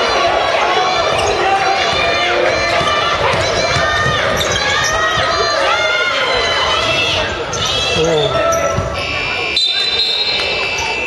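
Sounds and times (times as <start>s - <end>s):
people shouting and calling: 0.0s - 11.0s
basketball bouncing: 1.1s - 5.4s.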